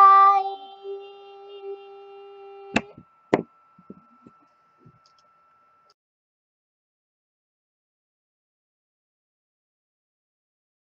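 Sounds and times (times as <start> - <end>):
faint steady hum: 0.0 - 6.0.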